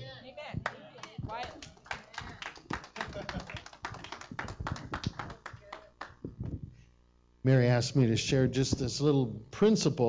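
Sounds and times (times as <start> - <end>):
people clapping: 0.6 - 6.4.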